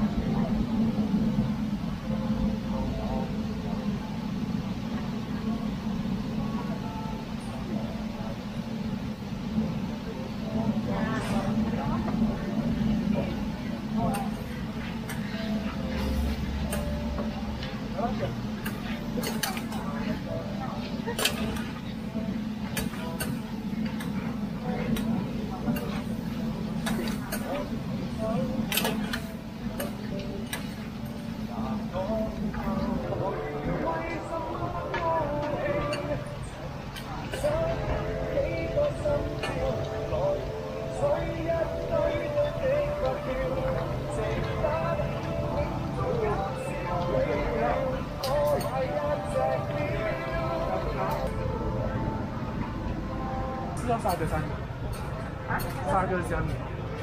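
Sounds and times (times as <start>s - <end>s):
steady low hum: 0.0s - 57.0s.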